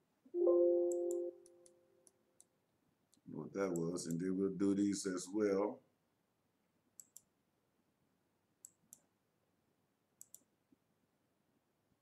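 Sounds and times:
computer mouse clicking: 7.0 - 7.3, 8.6 - 9.1, 10.2 - 10.5.

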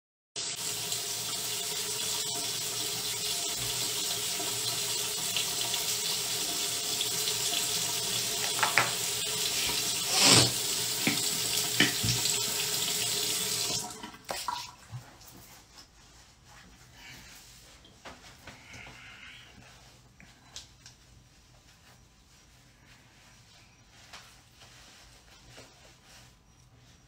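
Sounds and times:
water running from a tap: 0.4 - 15.1.

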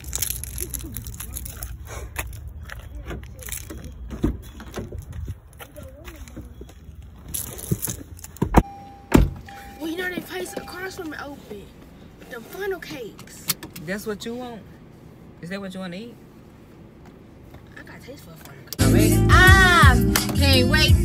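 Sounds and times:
car door opening: 7.6 - 11.0
car door shutting: 8.4 - 10.7
car warning chime: 8.6 - 11.5.

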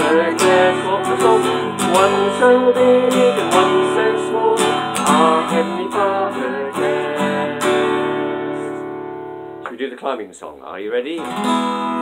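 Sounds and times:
two people singing: 0.0 - 8.9
acoustic guitar strumming: 0.0 - 9.9, 11.2 - 12.0.

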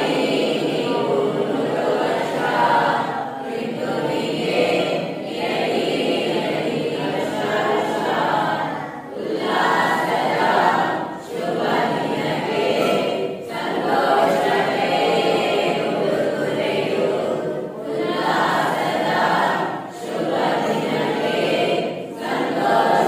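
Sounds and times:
children singing together: 0.0 - 23.0.

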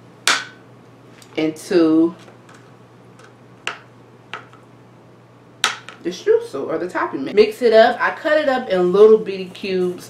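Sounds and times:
knife tapping cutting board: 3.7 - 4.6.

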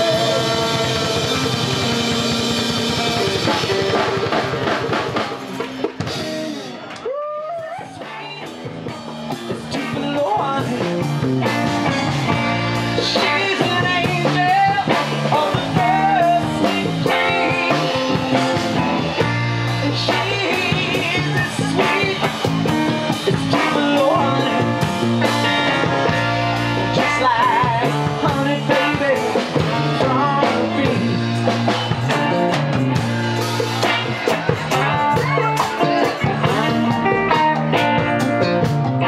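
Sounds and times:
person singing: 0.0 - 4.2, 7.0 - 38.6
bass guitar: 0.0 - 39.0
drum kit: 0.0 - 39.0
electric guitars: 0.0 - 39.0.

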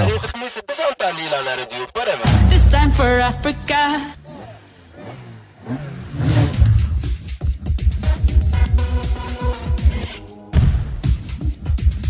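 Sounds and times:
electronic music with heavy bass: 2.2 - 4.1, 6.5 - 12.0.

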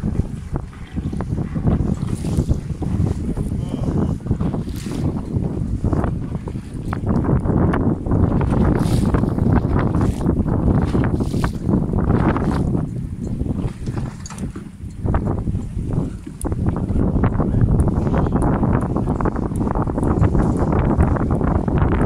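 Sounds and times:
rushing and splashing water: 0.0 - 16.9
wind buffeting microphone: 0.0 - 22.0.

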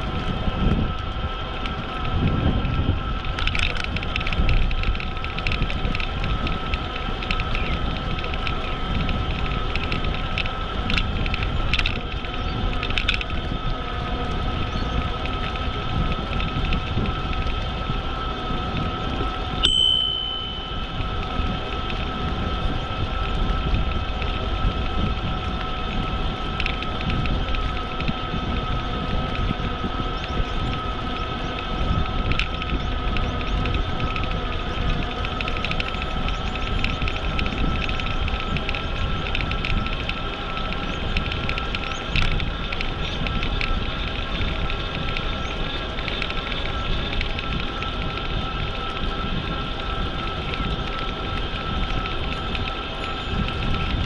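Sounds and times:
bicycle tyres rumbling on pavement: 0.0 - 54.0
faint steady whine: 0.0 - 54.0
wind buffeting microphone: 0.0 - 54.0
short metallic ring: 19.6 - 21.0.

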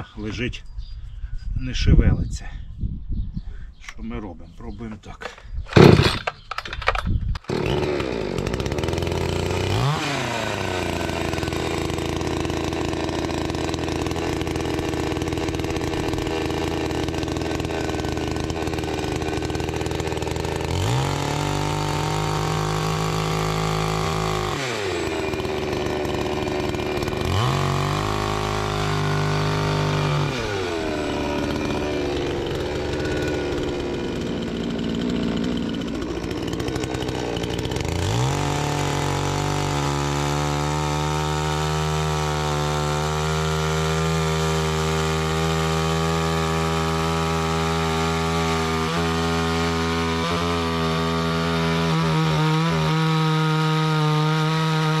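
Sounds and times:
chainsaw cutting a log: 5.7 - 6.6, 7.4 - 55.0.

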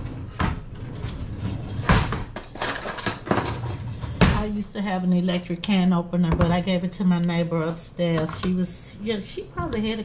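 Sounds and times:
kitchen items knocking and clattering: 0.0 - 4.6, 6.2 - 6.7.

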